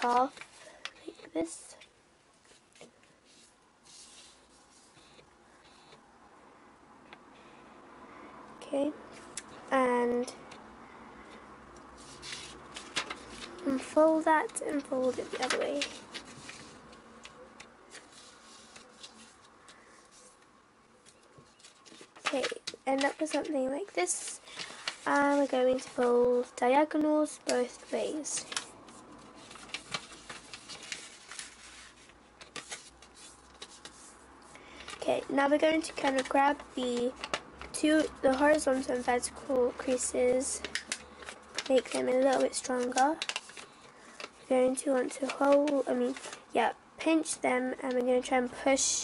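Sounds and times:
paper rustling and scraping: 0.0s - 1.6s, 2.5s - 6.0s, 12.0s - 20.4s, 21.0s - 26.6s, 27.4s - 34.2s, 34.8s - 46.5s.

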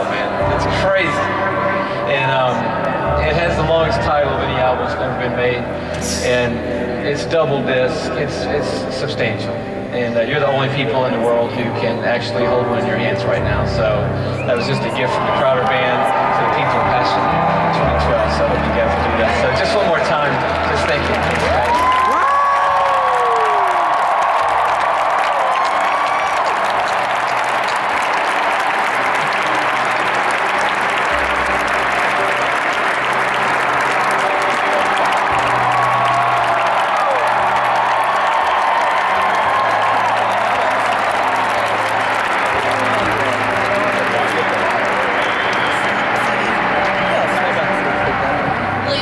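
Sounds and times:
large crowd applauding: 0.0s - 49.0s.

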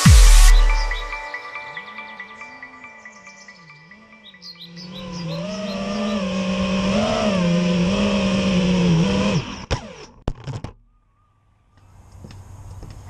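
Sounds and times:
drone motors whining: 3.6s - 10.2s.

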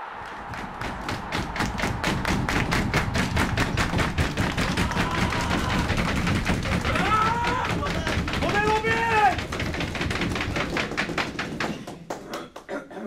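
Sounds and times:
team cheering: 0.0s - 10.8s
rapid claps and stomps: 0.0s - 12.7s.

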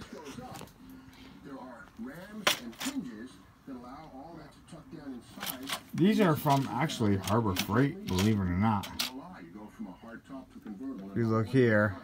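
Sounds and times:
faint male speech: 0.0s - 12.0s.

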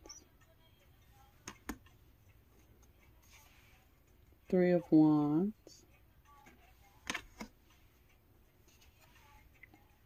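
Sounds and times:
card laid onto pile clicks: 7.0s - 7.5s.

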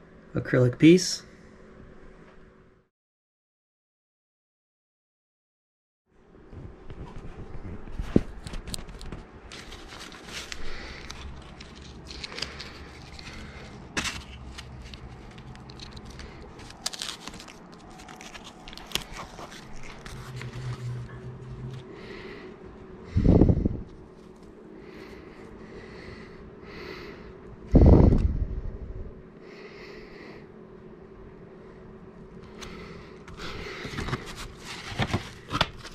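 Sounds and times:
vinyl film crackling and scraping: 6.8s - 21.9s, 33.8s - 35.9s.

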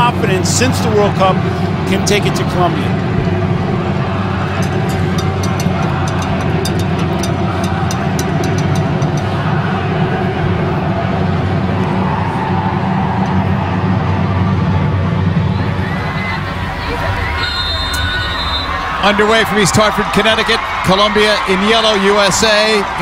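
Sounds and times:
stadium crowd din: 0.0s - 23.0s.

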